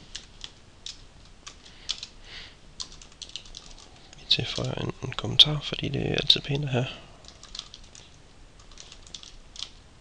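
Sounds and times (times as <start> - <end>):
computer keyboard key clicks: 7.3 - 9.8.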